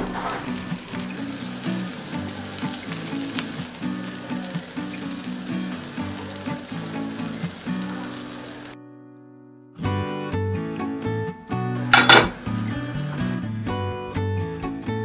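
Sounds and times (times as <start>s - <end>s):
frying pan crackling and sizzling: 0.0s - 8.8s, 11.8s - 13.4s
background music: 0.0s - 15.0s.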